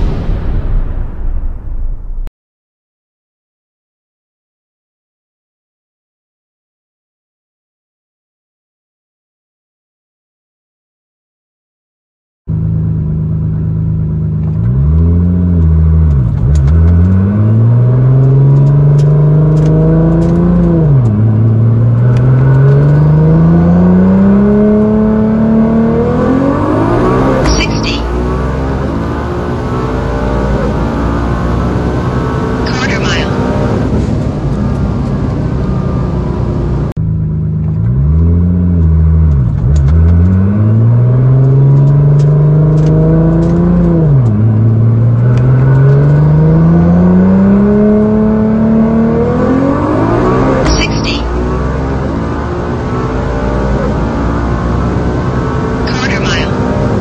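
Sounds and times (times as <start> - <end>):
car engine accelerating with upshifts: 12.5 - 57.0.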